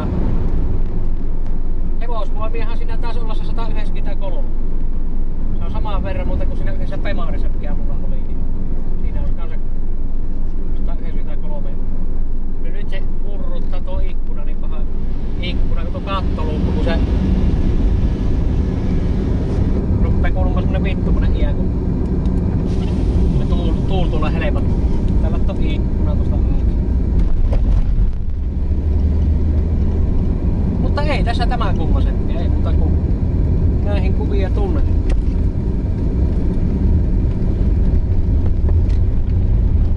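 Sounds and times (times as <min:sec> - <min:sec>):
engine and tyre drone in car cabin: 0:00.0 - 0:39.9.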